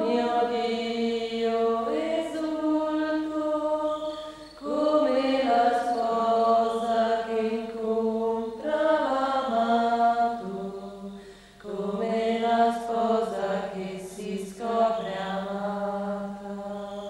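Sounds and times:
women singing religious chant: 0.0 - 17.0.

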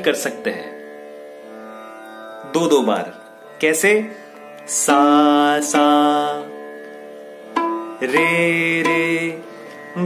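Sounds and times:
violin: 0.0 - 10.0.

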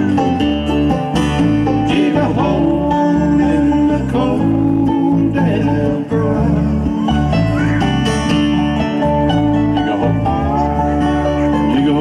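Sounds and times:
bluegrass band playing: 0.0 - 12.0.

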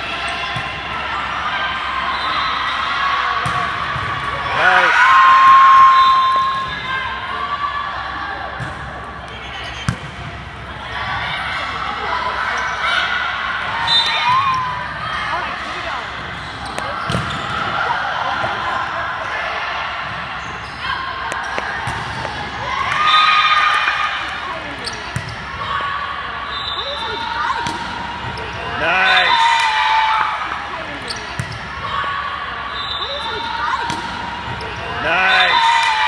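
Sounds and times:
players and spectators shouting: 0.0 - 8.6, 16.8 - 36.0.

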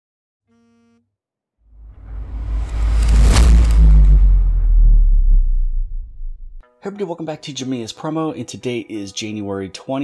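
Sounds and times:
deep rumble and whoosh: 1.7 - 6.6.

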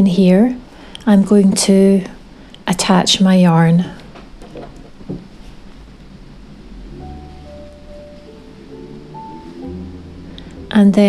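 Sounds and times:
soft background music: 0.0 - 2.2, 4.9 - 11.0.

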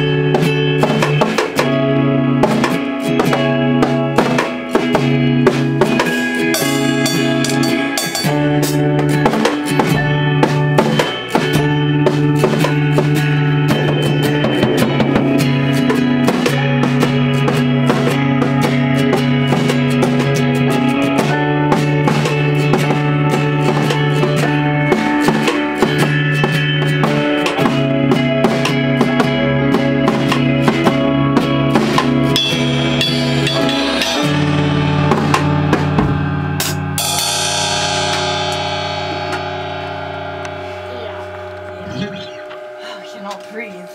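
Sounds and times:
live band playing: 0.0 - 43.9
cymbal crash: 5.6 - 20.4, 32.0 - 43.9.

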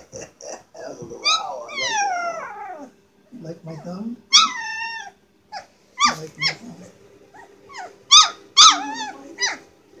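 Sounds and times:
puppy grunting: 0.0 - 3.0, 3.7 - 9.7
puppy howling: 0.4 - 3.0, 4.3 - 9.7.

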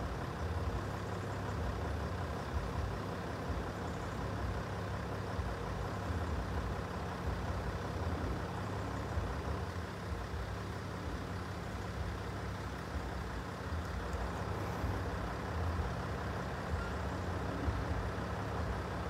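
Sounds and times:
vehicle engines idling: 0.0 - 19.0.

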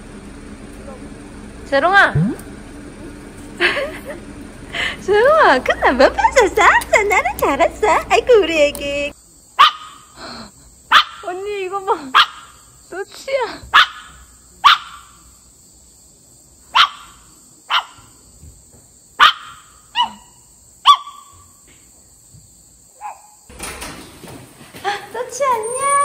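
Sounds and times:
small dog barking: 9.6 - 10.1, 10.9 - 11.3, 12.1 - 12.6, 13.7 - 15.2, 16.7 - 18.1, 19.2 - 21.4, 23.0 - 23.4.

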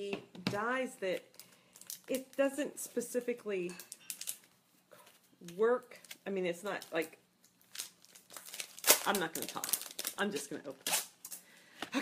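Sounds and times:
packaging crinkling and rustling: 1.2 - 2.4, 3.8 - 11.4.

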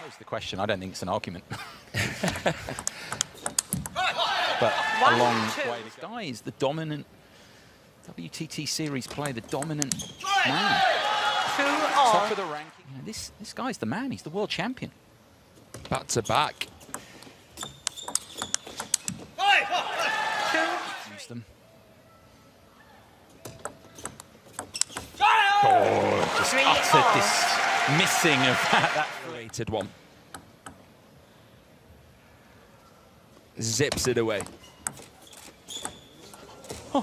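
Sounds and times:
table tennis ball clicking: 2.8 - 4.0, 17.6 - 19.2, 23.4 - 25.1.

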